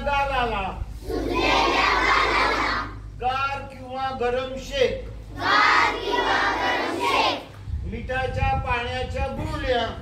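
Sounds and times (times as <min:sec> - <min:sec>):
children shouting together: 0:01.0 - 0:03.1, 0:05.3 - 0:07.5.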